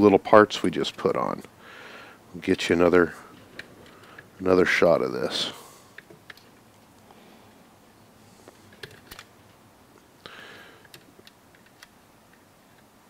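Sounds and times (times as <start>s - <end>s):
small plastic parts clicking: 10.8s - 12.9s.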